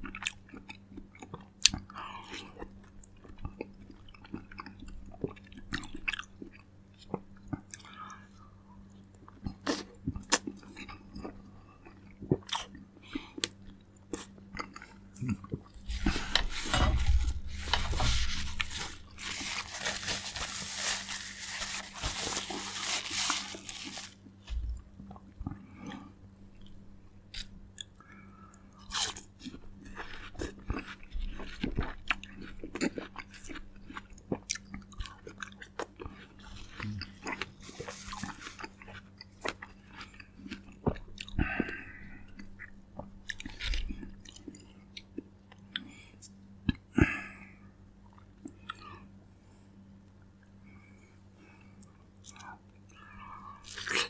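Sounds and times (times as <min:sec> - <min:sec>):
person chewing fruit: 0:00.0 - 0:08.2, 0:08.8 - 0:28.0, 0:28.7 - 0:47.3, 0:48.0 - 0:49.2, 0:50.4 - 0:54.0.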